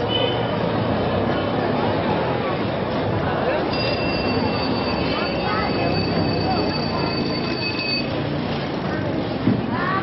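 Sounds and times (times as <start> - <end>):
people's voices in street: 0.0 - 10.0.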